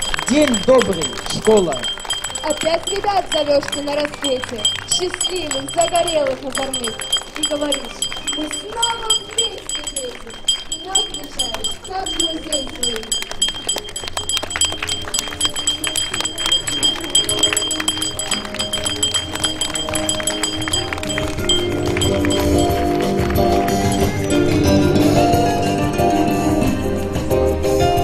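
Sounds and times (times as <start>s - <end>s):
handbell ringing: 0.0s - 25.5s
song playing: 0.0s - 28.0s.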